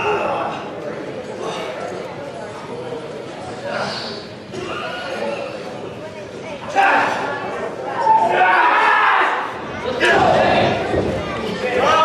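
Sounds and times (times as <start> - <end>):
crowd murmur: 0.0 - 12.0.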